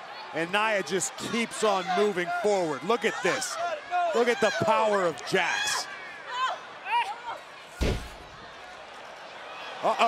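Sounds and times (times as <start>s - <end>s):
wrestler thudding onto ring mat: 7.8s - 8.3s.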